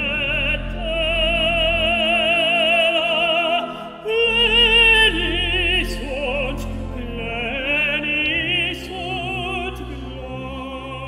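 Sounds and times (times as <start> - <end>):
low sustained accompaniment: 0.0 - 11.0
tenor singing classical solo: 0.0 - 11.0.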